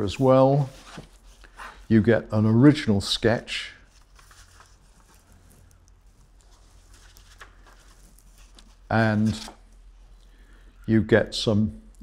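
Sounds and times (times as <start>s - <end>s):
low room hum: 0.0s - 12.0s
paper rustling and tapping: 6.3s - 9.6s.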